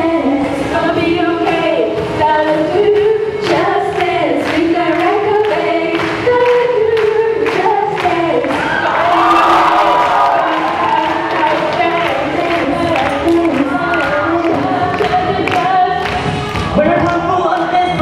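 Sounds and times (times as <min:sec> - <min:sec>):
group singing in harmony: 0:00.0 - 0:17.2.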